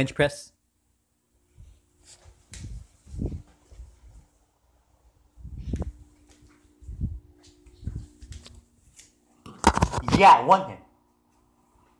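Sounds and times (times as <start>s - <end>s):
faint steady hum: 0.0s - 11.9s
phone handling thumps and rustles: 9.5s - 10.2s.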